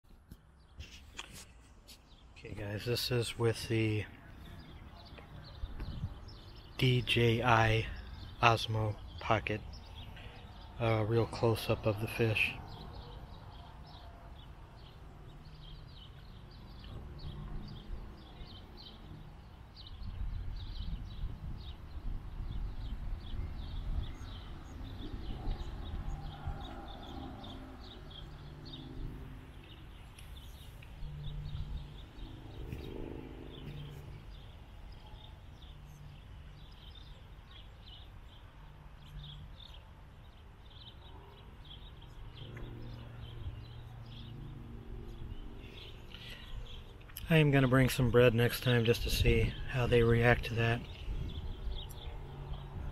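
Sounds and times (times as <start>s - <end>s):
small birds chirping: 0.1s - 52.9s.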